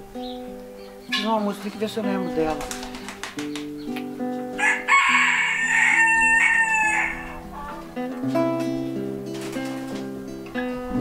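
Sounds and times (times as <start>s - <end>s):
acoustic guitar picked chords: 0.0s - 11.0s
rooster crowing: 4.6s - 7.8s.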